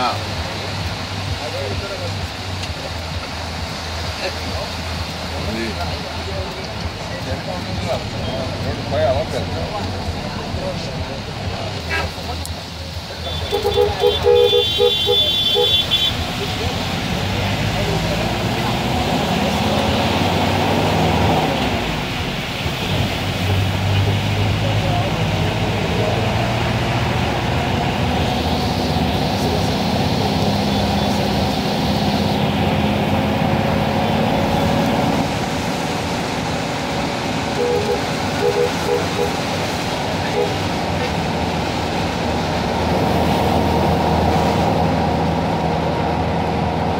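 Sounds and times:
heavy rain: 0:00.0 - 0:46.9
wet road traffic noise: 0:00.0 - 0:46.9.

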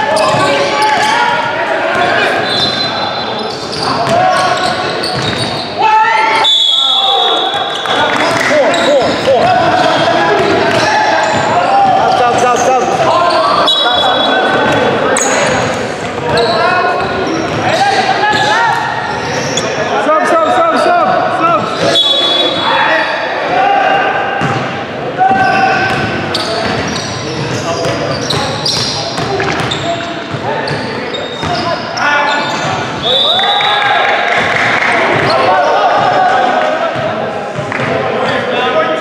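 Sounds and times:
people shouting and talking: 0:00.0 - 0:39.0.

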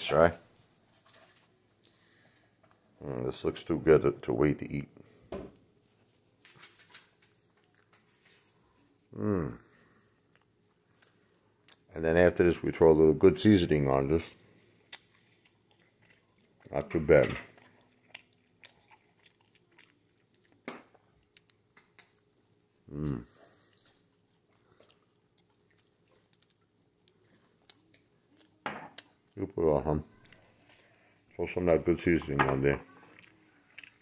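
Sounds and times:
person chewing crunchy food: 0:14.7 - 0:29.5, 0:32.2 - 0:34.0.

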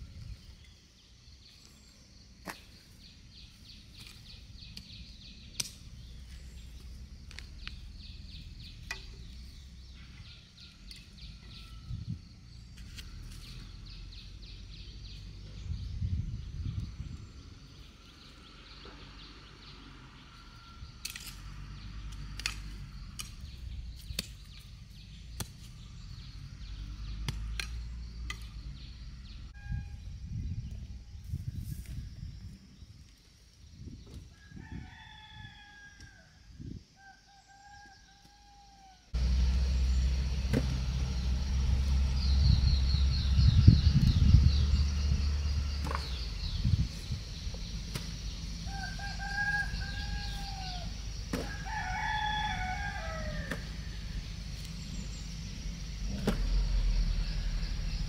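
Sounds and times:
rooster crowing: 0:34.3 - 0:36.4, 0:48.6 - 0:54.2
low rumble: 0:39.2 - 0:51.4.

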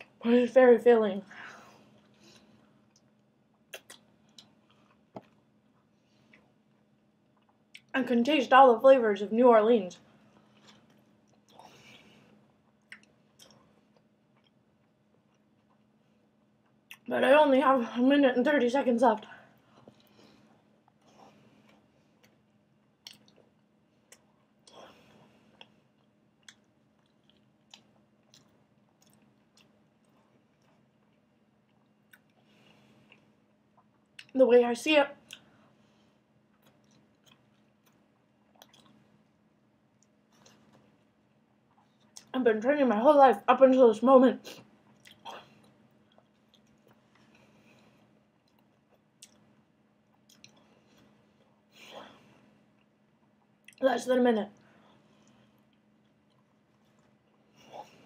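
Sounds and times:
faint chewing: 0:01.6 - 0:08.0, 0:10.1 - 0:17.1, 0:19.6 - 0:34.4, 0:35.2 - 0:42.3, 0:44.4 - 0:53.8, 0:54.6 - 0:58.0
mouth clicks from chewing: 0:36.6 - 0:39.0.

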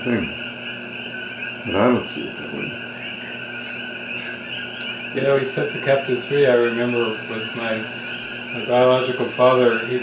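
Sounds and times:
faint high-pitched drone: 0:00.0 - 0:10.0.

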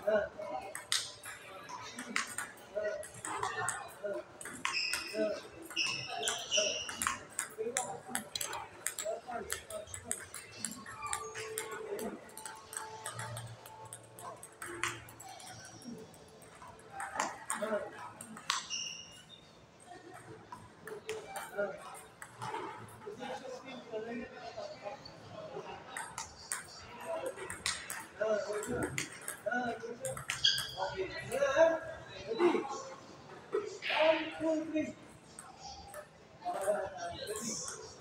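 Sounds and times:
ping pong ball clicking: 0:00.6 - 0:19.2, 0:25.9 - 0:30.8.

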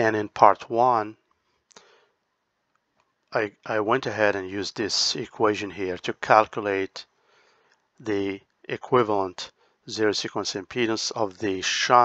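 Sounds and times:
man speaking: 0:00.0 - 0:01.1, 0:03.4 - 0:07.0, 0:08.0 - 0:12.0
faint hiss: 0:08.0 - 0:12.0.

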